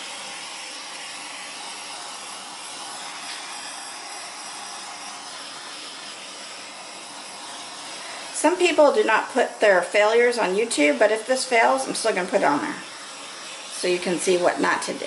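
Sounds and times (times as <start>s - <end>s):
torch flame hissing: 0.0s - 15.0s.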